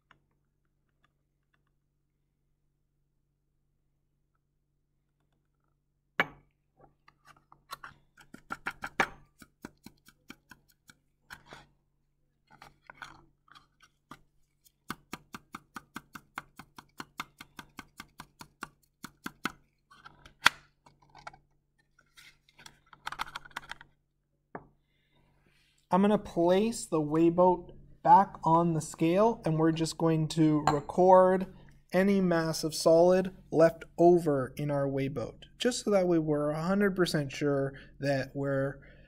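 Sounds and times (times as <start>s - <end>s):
glass flask tapping: 6.2s - 6.5s, 30.5s - 31.0s.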